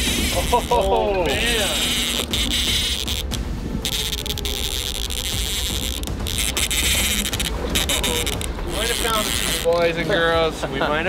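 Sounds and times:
fishing reel drag buzzing: 0.0 - 9.8
steady low rumble: 0.0 - 10.7.

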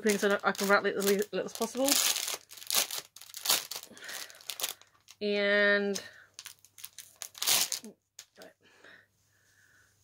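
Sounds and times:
parcel wrapping crinkling and tearing: 0.0 - 5.2, 6.4 - 8.4.

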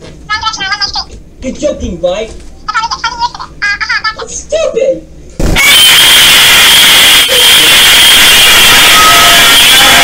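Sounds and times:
loud harsh static hiss: 5.4 - 10.0.

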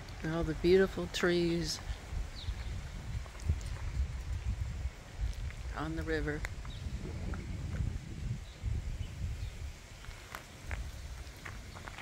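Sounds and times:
wind rumble: 0.0 - 12.0
microphone handling: 2.4 - 8.8.

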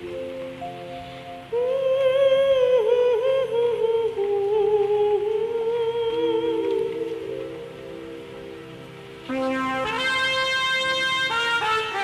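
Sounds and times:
karaoke backing track: 0.0 - 12.0
woman singing a long note: 1.5 - 7.9.

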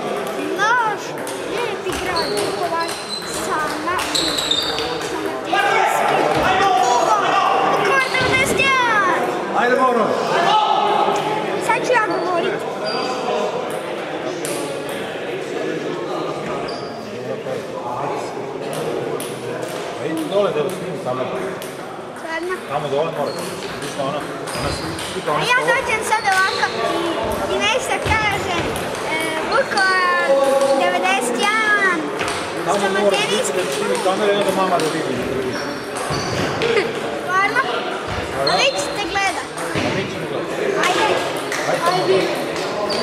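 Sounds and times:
table tennis balls clicking: 0.0 - 5.3, 32.2 - 35.1.

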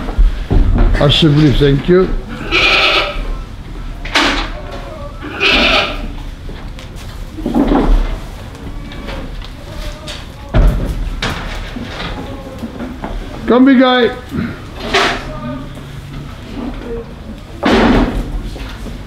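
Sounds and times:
goats bleating: 2.3 - 3.5, 4.9 - 6.2.

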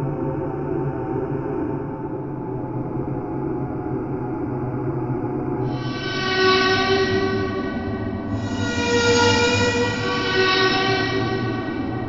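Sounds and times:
synthesizer chords: 5.7 - 12.0
low bass: 5.8 - 12.0.

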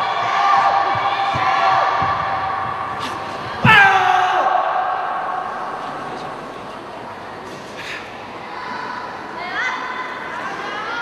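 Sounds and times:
loud shout ringing in a hall: 0.0 - 6.5, 8.3 - 11.0
murmur of voices in a hall: 0.0 - 11.0.

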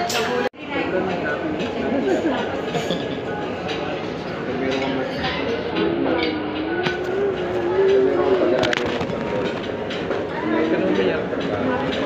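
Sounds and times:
dishes clinking and knocking: 0.0 - 12.0
murmur of voices: 0.0 - 12.0.

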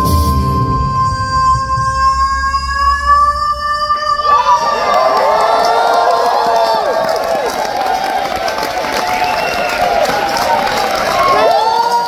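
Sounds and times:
audience cheering and whooping: 0.9 - 12.0.

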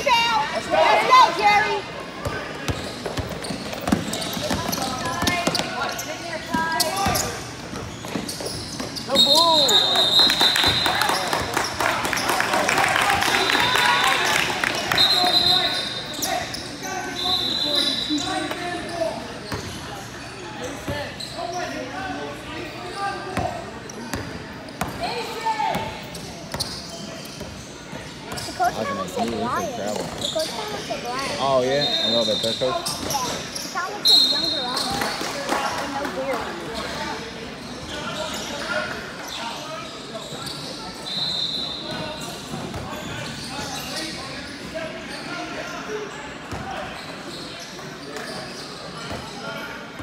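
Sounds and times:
spectators talking and calling out: 0.0 - 50.0
basketball bouncing: 2.7 - 5.7
referee's whistle blasts: 9.1 - 11.0, 14.9 - 16.1, 17.1 - 18.3, 34.0 - 34.9, 41.0 - 41.9.

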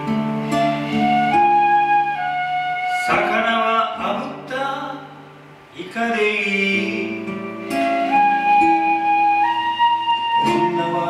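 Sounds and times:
acoustic guitar strums: 0.0 - 2.3, 2.9 - 11.0
bamboo flute long notes: 0.4 - 3.8, 7.7 - 11.0.

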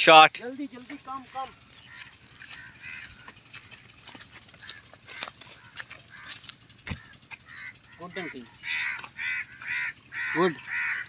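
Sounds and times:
footsteps on muddy ground: 0.4 - 11.0.

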